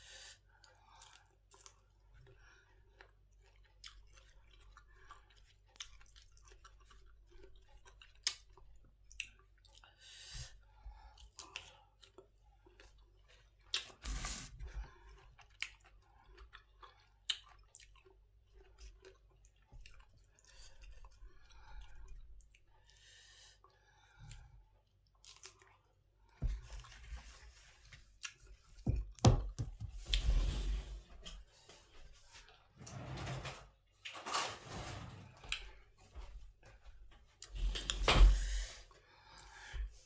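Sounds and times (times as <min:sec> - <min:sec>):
chewing with soft crunches: 0:00.3 - 0:28.8, 0:31.2 - 0:32.8, 0:35.4 - 0:38.0.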